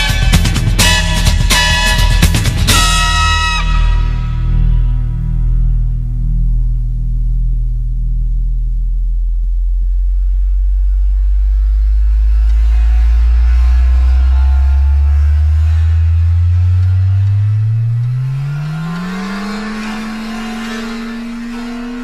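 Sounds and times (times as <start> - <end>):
deep tone rising in pitch: 0.0 - 22.0.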